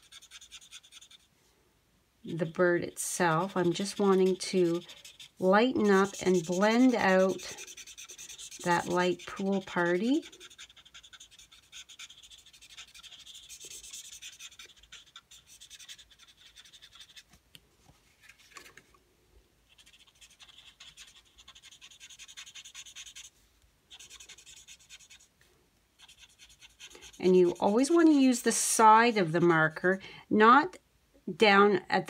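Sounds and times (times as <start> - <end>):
marker tip scratching on cardstock: 0.0 - 1.3, 2.4 - 17.2, 19.7 - 23.3, 23.9 - 25.3, 26.0 - 29.8.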